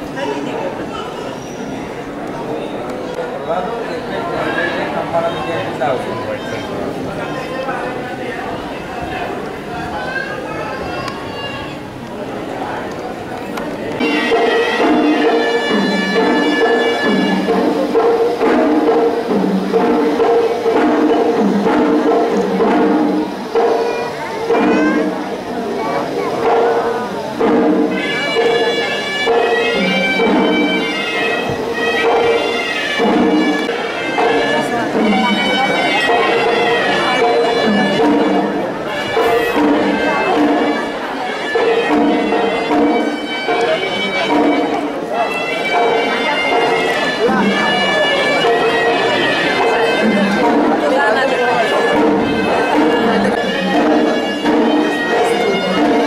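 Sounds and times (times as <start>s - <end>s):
crowd voices: 0.0s - 56.0s
shawm melody: 0.0s - 56.0s
repeating drum pattern: 14.0s - 56.0s.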